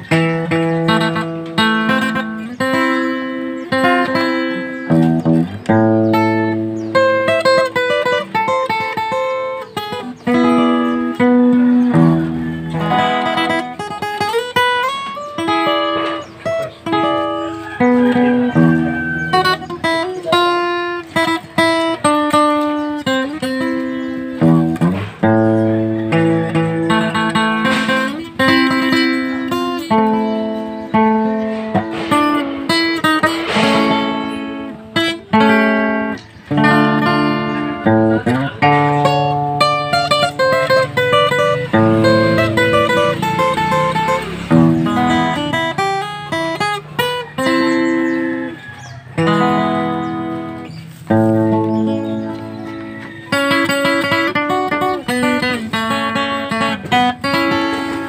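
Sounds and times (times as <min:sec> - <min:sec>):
acoustic guitar playing: 0:00.0 - 0:58.0.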